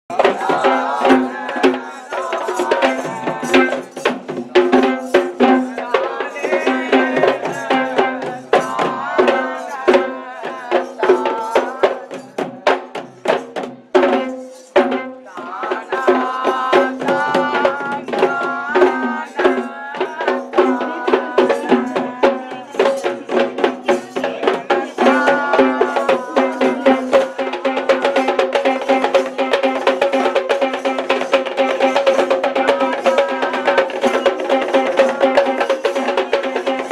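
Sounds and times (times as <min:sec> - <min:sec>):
hand-beaten barrel drums: 0:00.1 - 0:36.9.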